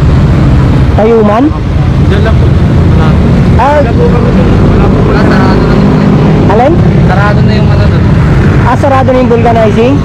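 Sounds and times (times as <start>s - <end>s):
people talking: 1.0s - 10.0s.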